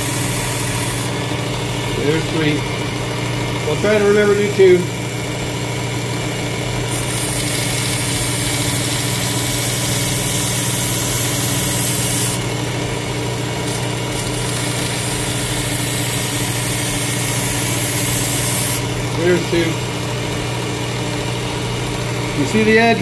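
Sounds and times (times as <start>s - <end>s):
blade grinding on belt: 0.0s - 21.1s
sharpener motor hum: 0.0s - 23.0s.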